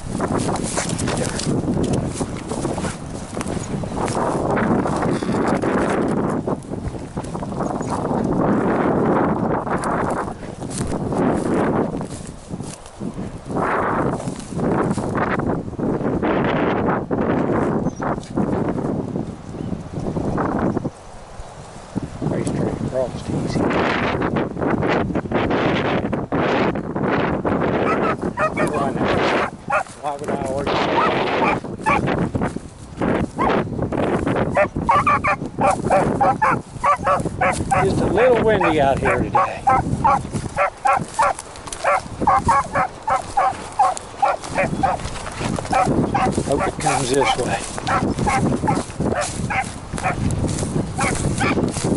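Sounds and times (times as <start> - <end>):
dry grass rustling underfoot: 0.0 - 51.9
wind buffeting microphone: 0.0 - 51.9
dog baying: 27.8 - 29.9, 30.9 - 32.0, 34.5 - 45.1, 45.7 - 50.2, 51.0 - 51.6.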